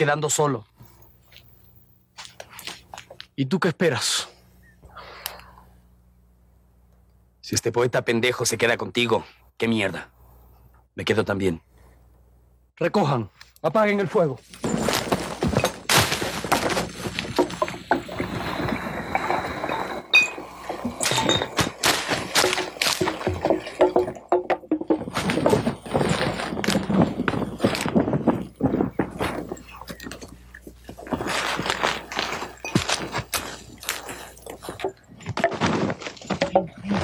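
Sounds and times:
camp gear knocking and clattering: 0:14.5 - 0:37.0.

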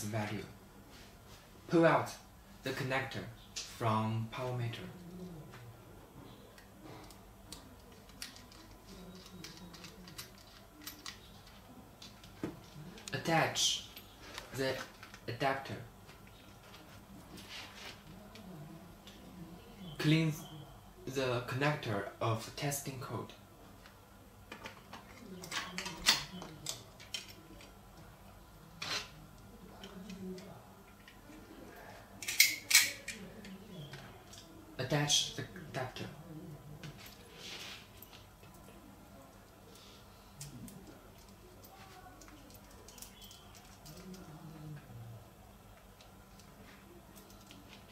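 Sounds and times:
light handling noises: 0:04.5 - 0:13.2, 0:23.6 - 0:34.7.

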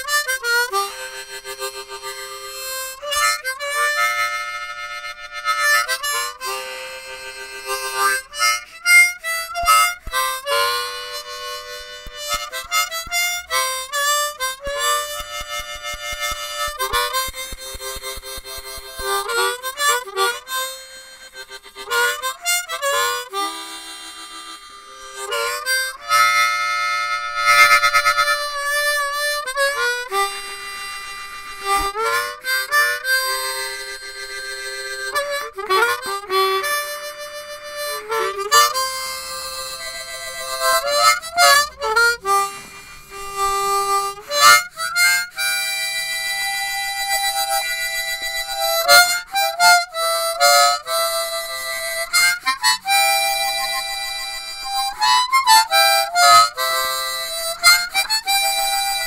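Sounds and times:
blues harmonica: 0:00.0 - 0:59.0.

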